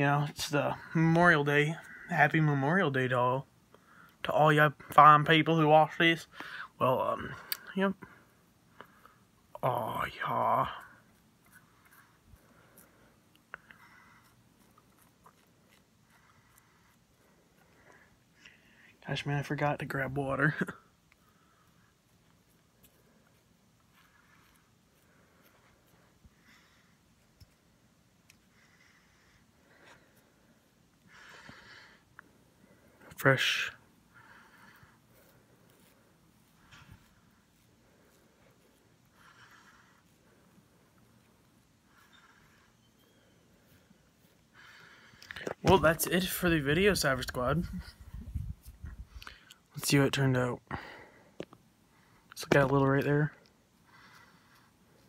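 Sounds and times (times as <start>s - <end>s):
razor scraping through shaving cream: 9.8s - 17.8s.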